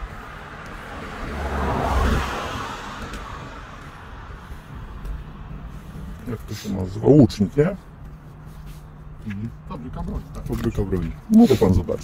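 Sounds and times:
car passing by: 0:00.0 - 0:07.8.

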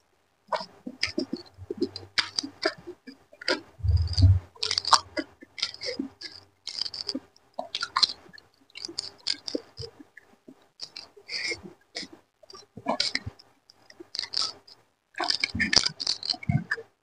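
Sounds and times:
wet chewing and lip smacking: 0:00.5 - 0:16.8.

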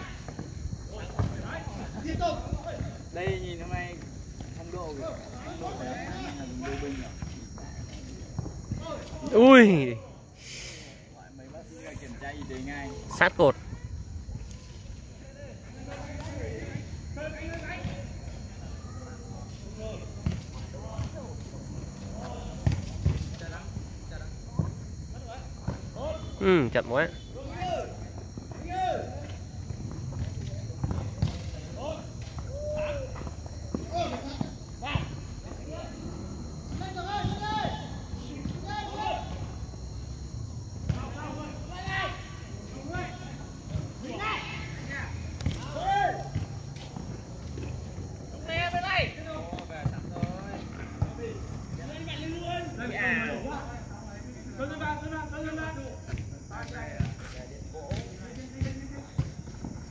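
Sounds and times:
players shouting calls: 0:31.8 - 0:39.6.

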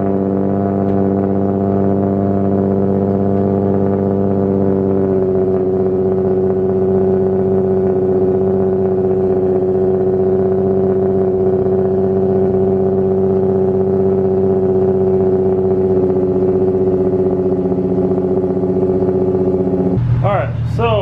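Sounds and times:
car engine idling: 0:00.0 - 0:21.0.

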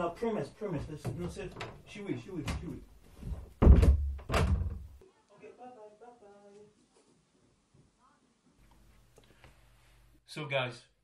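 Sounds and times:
door knocking: 0:02.4 - 0:05.0.

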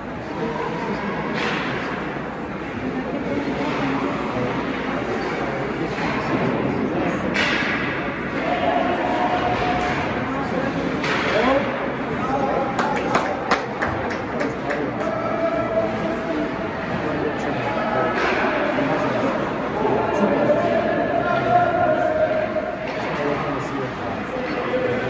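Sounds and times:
echoing indistinct voices: 0:00.0 - 0:25.0.

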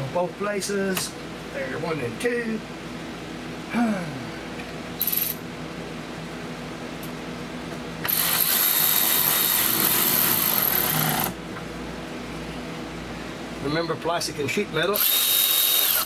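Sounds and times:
power tool whirring: 0:08.0 - 0:11.4, 0:15.0 - 0:16.0.

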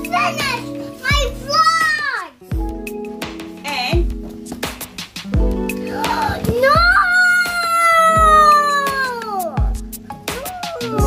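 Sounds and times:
background music with steady beat: 0:00.0 - 0:11.0
girl's high-pitched vocal cry: 0:05.9 - 0:09.7, 0:10.3 - 0:11.0.

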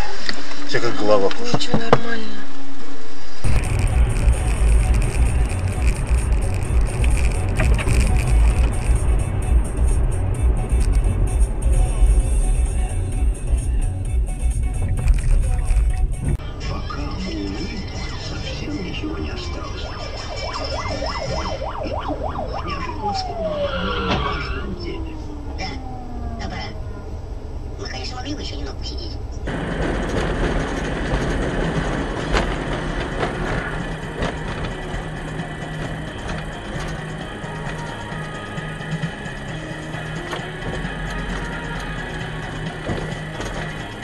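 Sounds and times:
car driving low rumble: 0:00.0 - 0:44.0
whining tones gliding down: 0:14.8 - 0:27.9.

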